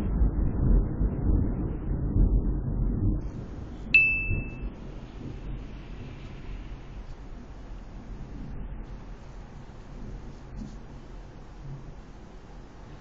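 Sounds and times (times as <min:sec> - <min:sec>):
distant thunder rumble: 0:00.0 - 0:13.0
bright ding: 0:04.0 - 0:04.7.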